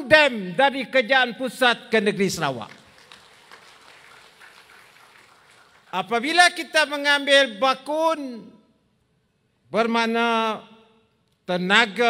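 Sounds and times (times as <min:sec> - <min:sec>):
audience applause: 0:02.7 - 0:06.0.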